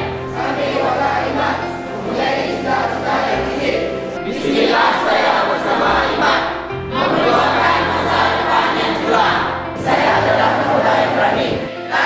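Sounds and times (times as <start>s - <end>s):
group singing in chorus: 0.0s - 12.0s.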